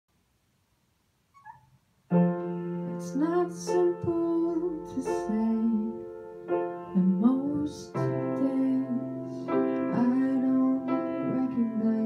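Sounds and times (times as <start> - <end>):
faint high-pitched squeak: 1.3 - 1.8.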